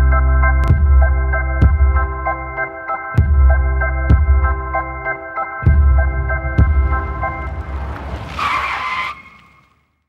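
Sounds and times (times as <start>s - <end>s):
intro music: 0.0s - 8.2s
low rumble: 5.7s - 8.4s
tyre screech: 6.9s - 9.8s.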